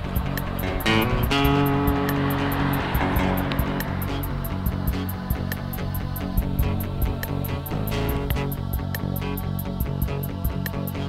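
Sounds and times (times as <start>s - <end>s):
background music with steady beat: 0.0s - 11.0s
fast high ticking: 0.0s - 11.0s.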